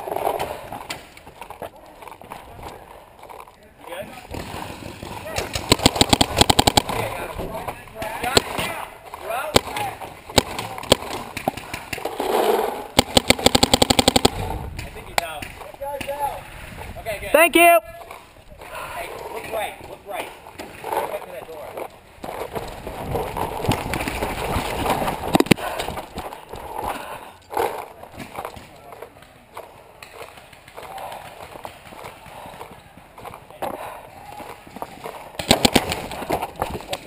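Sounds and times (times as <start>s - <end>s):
paintball marker shots: 5.0s - 7.2s, 9.5s - 12.0s, 13.0s - 16.2s, 35.4s - 36.5s
footsteps: 18.0s - 37.0s.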